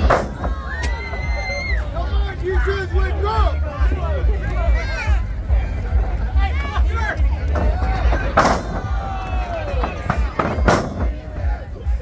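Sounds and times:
people shouting: 0.0 - 5.3, 6.2 - 12.0.

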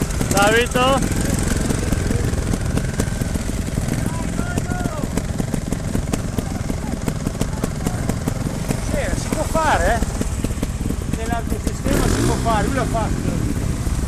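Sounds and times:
motorcycle engines idling: 0.0 - 14.0
faint voices: 0.2 - 10.3.

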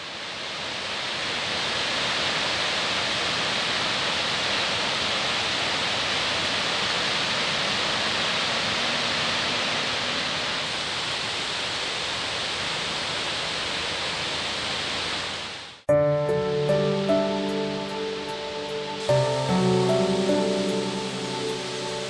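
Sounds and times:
stream rushing over boulders: 0.0 - 15.8, 16.8 - 22.0.

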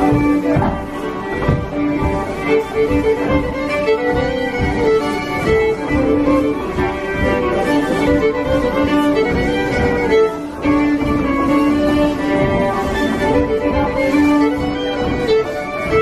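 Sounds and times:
fiddle duet: 0.0 - 16.0.

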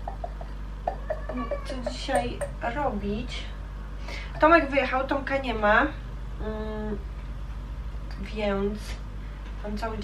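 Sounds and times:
woman humming: 0.0 - 2.6
low background hum: 0.0 - 10.0.

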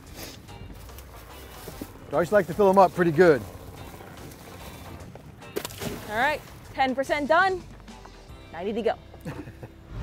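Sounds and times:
background music: 0.0 - 10.0
trap splashing into water: 5.5 - 6.6.

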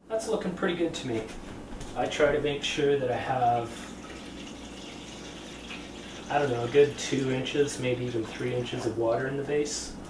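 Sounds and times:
water pouring into a pan: 3.9 - 8.8.

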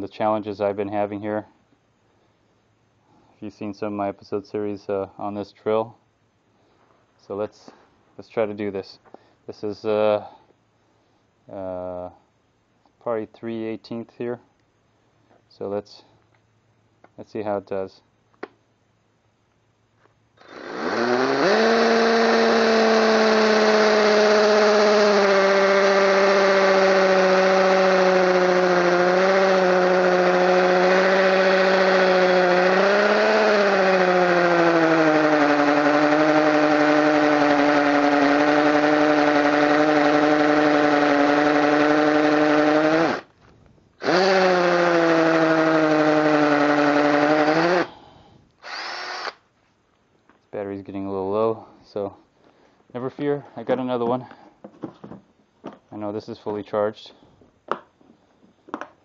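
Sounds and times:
hammer drill drilling into masonry: 20.4 - 43.3, 44.0 - 47.9, 48.6 - 49.4.

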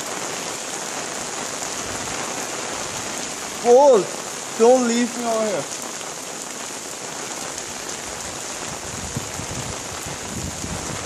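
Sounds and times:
rain on tiles: 0.0 - 11.0.

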